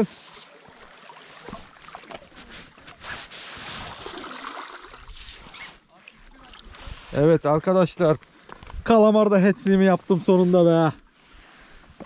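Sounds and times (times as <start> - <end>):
seawater splashing and trickling: 0.0 - 7.3.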